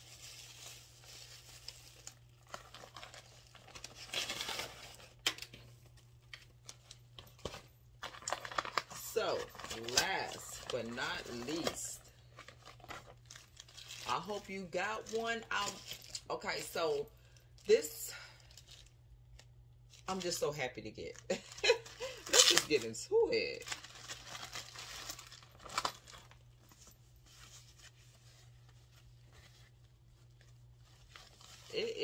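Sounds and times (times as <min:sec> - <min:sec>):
paper and plastic rustling: 0:00.0 - 0:16.7, 0:21.4 - 0:32.0.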